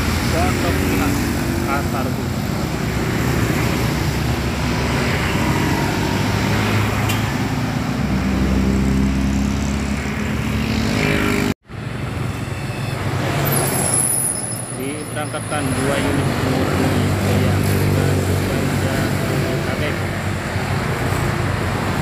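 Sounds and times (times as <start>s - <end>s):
bus passing: 0.0s - 22.0s
cars passing: 0.0s - 22.0s
motorcycles passing: 0.0s - 22.0s.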